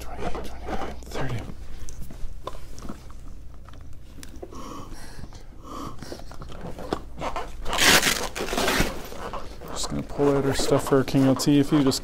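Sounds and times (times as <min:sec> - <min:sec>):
plastic packaging rustling: 0:06.7 - 0:12.0.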